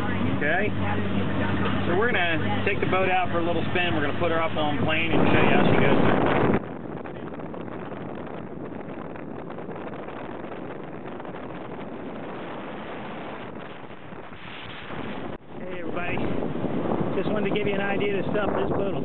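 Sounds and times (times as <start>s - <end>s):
voices: 0.0s - 6.1s
boat engine: 0.0s - 19.0s
wind on microphone: 0.0s - 19.0s.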